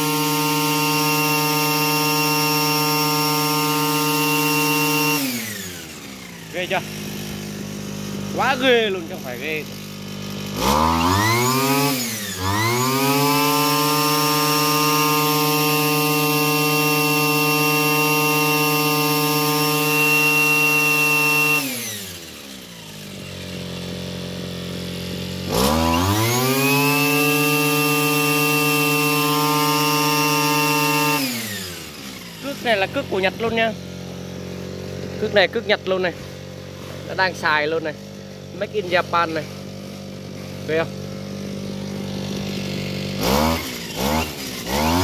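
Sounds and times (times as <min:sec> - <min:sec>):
brush cutter engine revving: 0:00.0 - 0:45.0.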